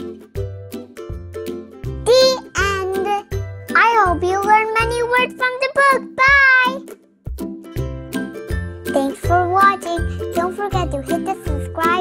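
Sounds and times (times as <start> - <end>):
background music with steady beat: 0.0 - 5.4, 6.0 - 12.0.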